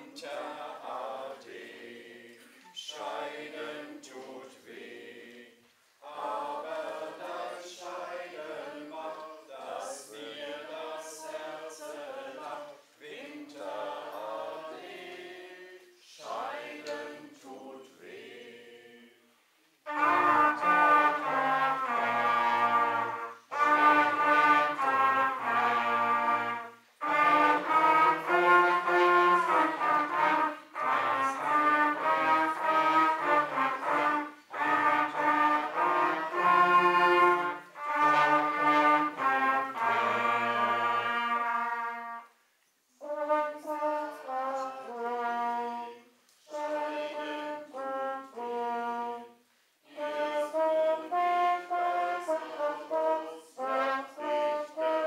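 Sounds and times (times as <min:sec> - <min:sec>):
brass ensemble playing: 0:19.8 - 0:42.4, 0:43.0 - 0:55.0.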